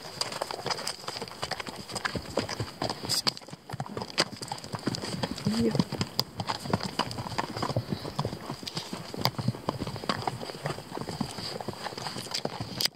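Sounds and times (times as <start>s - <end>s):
horse hooves on dirt: 0.0s - 12.9s.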